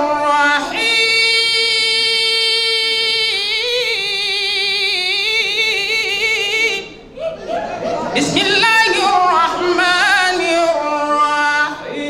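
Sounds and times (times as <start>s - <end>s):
man chanting through a microphone: 8.2s - 12.0s.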